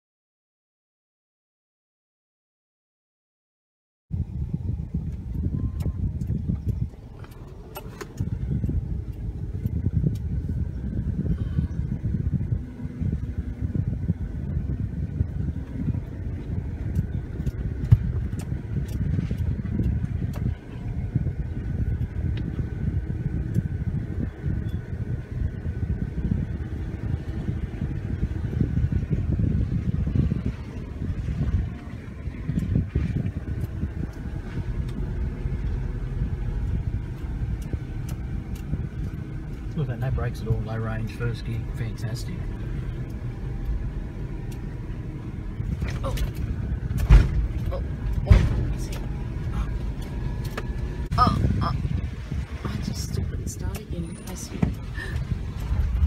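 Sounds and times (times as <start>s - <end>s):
engine and tyres rumbling: 4.1s - 56.0s.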